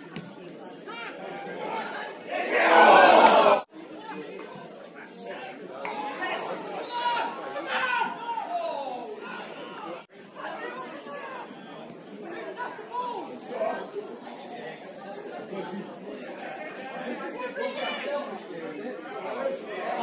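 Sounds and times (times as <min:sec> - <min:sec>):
overlapping chatter and calls: 0:00.0 - 0:20.0.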